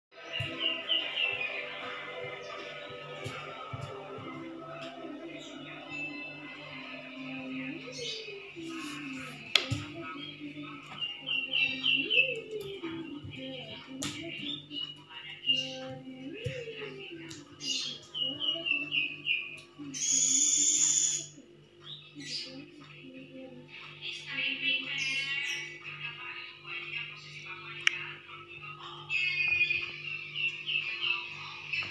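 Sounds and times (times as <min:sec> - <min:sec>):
television soundtrack music: 0:00.1 - 0:31.9
high wavering singing: 0:00.2 - 0:21.4.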